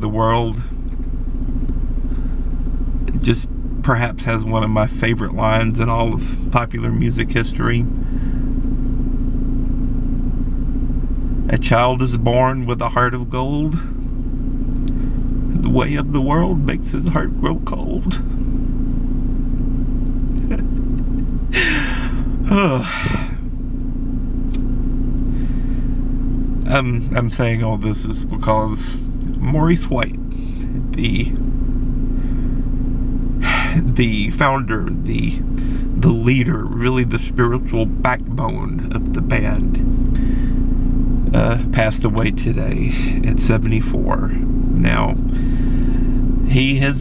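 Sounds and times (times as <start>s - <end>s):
car engine idling: 0.0s - 47.0s.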